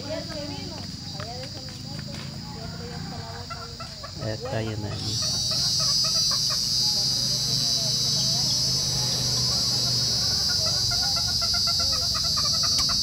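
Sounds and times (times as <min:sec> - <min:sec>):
chickens clucking: 0:00.0 - 0:13.0
high-pitched insect buzzing: 0:04.2 - 0:13.0.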